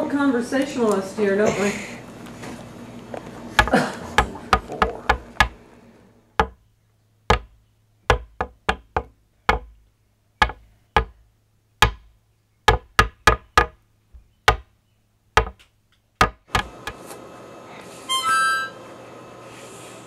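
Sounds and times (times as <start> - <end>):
sharp irregular knocks: 3.6 - 5.6, 6.4 - 6.6, 7.3 - 11.2, 11.8 - 17.0.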